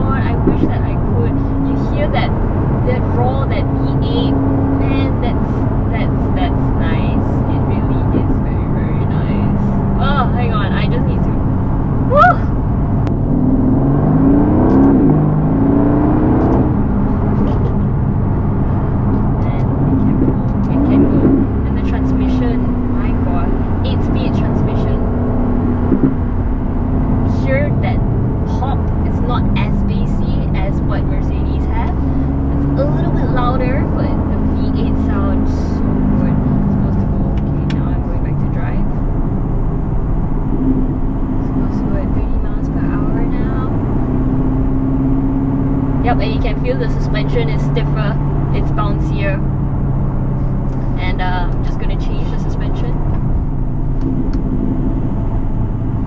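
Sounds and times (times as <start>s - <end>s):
car engine heard from inside cabin: 0.0s - 56.0s.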